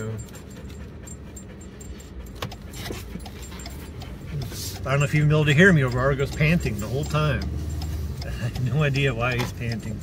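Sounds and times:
dog panting: 0:00.0 - 0:07.5
low hum of car driving: 0:00.0 - 0:10.0.

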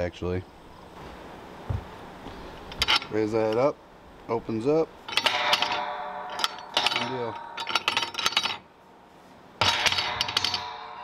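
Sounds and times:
metal gate latch rattling: 0:02.8 - 0:03.7, 0:05.1 - 0:08.7, 0:09.6 - 0:11.0
metal gate clanging shut: 0:05.1 - 0:08.6, 0:09.6 - 0:11.0.

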